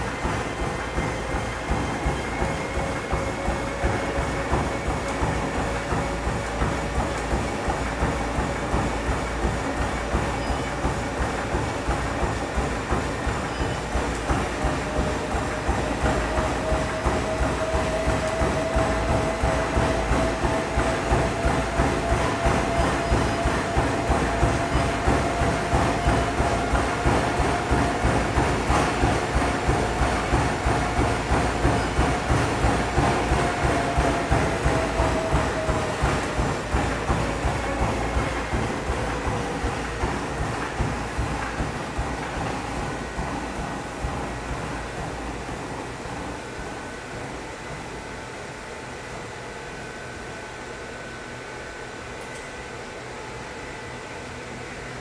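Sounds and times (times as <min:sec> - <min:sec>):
footfalls on treadmill belt: 0:00.0 - 0:47.8
treadmill motor whine: 0:00.0 - 0:55.0.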